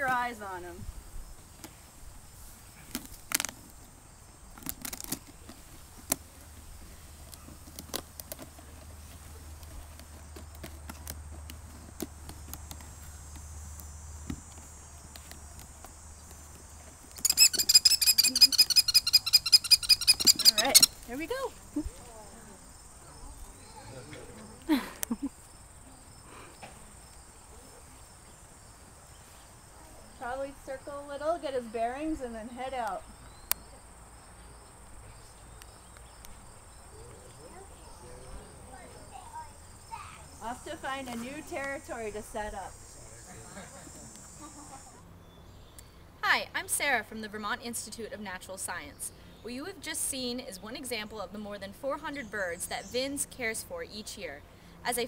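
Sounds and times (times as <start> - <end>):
crickets droning: 0.0 - 55.0
kestrel shrill calls: 17.2 - 21.1.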